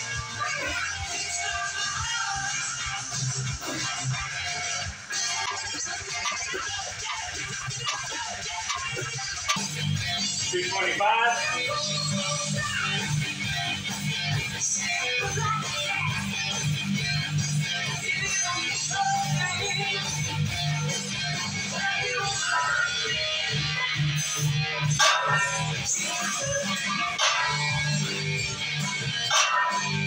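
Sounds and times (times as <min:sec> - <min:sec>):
guitar background music: 0:13.1 - 0:30.0.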